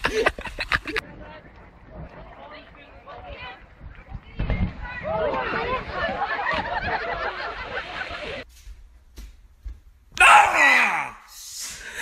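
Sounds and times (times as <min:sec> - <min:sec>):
person crying out: 0:10.2 - 0:11.3.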